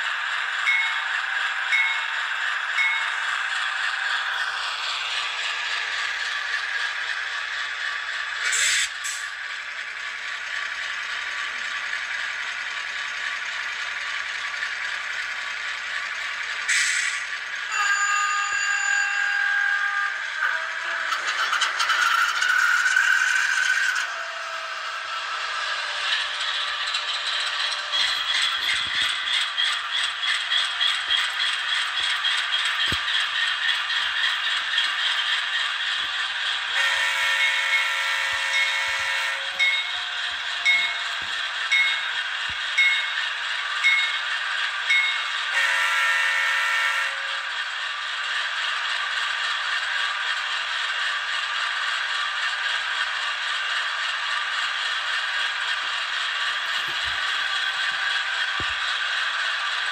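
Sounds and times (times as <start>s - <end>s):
locomotive bell ringing: 0.6s - 3.4s, 17.7s - 20.2s, 36.8s - 47.2s
multi-chime train horn: 17.7s - 20.2s, 36.8s - 39.9s, 45.5s - 47.4s.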